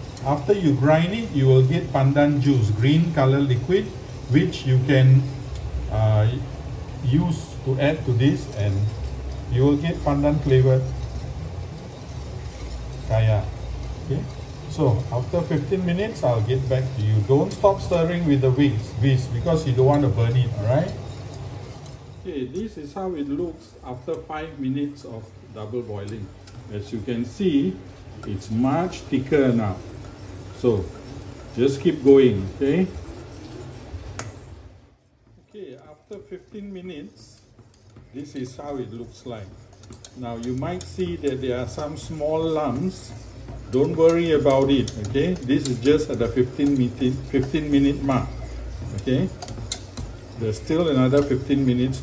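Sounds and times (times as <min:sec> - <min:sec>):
gas burner rumble: 0:00.0 - 0:52.0
water boiling: 0:00.0 - 0:52.0
whisk scraping a pot: 0:00.0 - 0:52.0.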